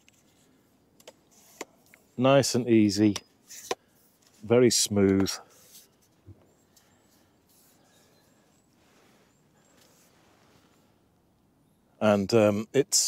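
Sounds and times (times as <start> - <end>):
distant bird chirps: 3.0 - 4.2, 5.4 - 12.0.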